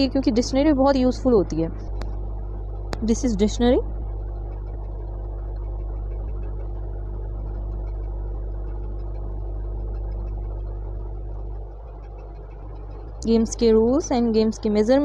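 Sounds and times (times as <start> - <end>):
low mechanical hum: 0.0 - 15.0.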